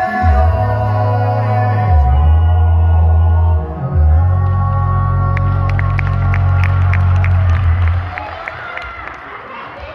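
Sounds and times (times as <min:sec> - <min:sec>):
male vocal group singing a chord: 0:00.0 - 0:08.0.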